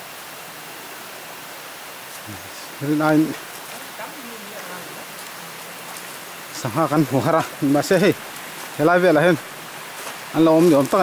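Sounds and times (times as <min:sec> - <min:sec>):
river rushing over rocks: 0:00.0 - 0:11.0.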